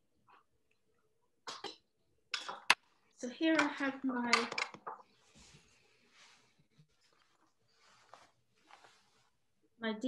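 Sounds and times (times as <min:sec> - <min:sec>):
small items rustling on workbench: 0:04.9 - 0:09.4.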